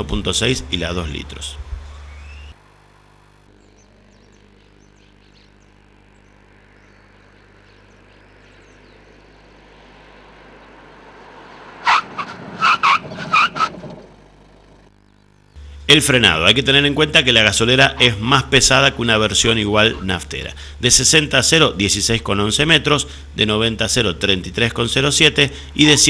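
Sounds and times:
car approaching: 6.2s - 15.0s
short loud animal calls: 19.7s - 20.2s.

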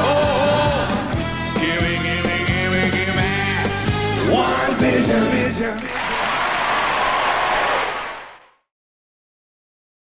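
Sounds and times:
studio audience applauding and cheering: 5.7s - 8.6s.

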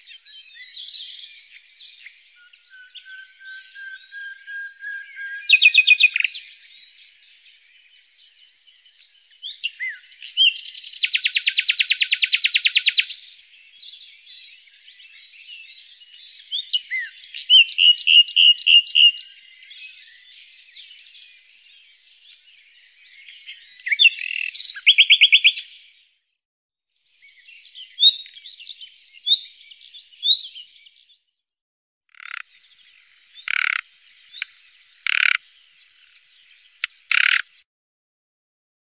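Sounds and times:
nightingale singing: 0.0s - 25.9s, 27.1s - 31.3s, 32.1s - 37.6s.

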